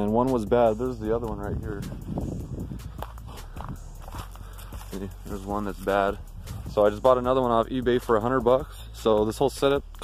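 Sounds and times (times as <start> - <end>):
footsteps on dry leaves and twigs: 1.3 - 7.2.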